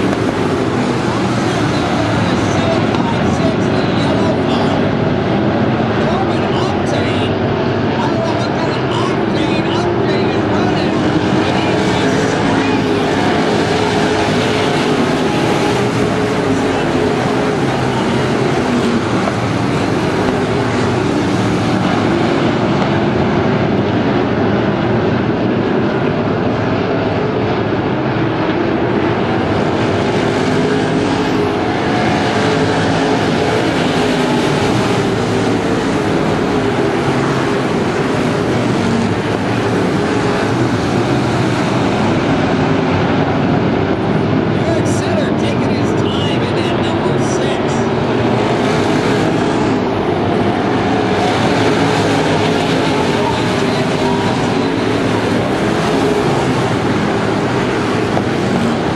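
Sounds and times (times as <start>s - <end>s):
race car engines roaring: 0.0s - 58.9s.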